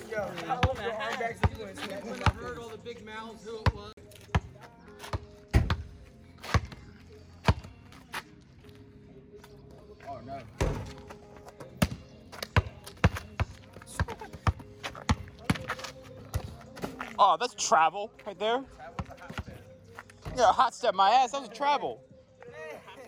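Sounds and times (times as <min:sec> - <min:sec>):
basketball bouncing on asphalt: 0:00.4 - 0:02.5, 0:03.6 - 0:07.8, 0:10.6 - 0:17.1, 0:18.8 - 0:20.4.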